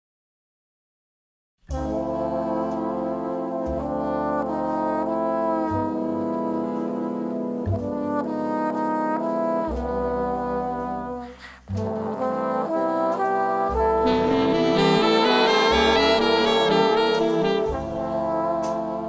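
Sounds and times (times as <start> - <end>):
trombones playing slow chords: 1.7 - 19.0.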